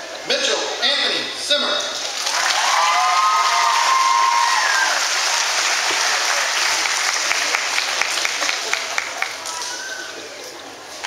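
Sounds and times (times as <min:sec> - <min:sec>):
audience applauding: 0:02.1 - 0:10.2.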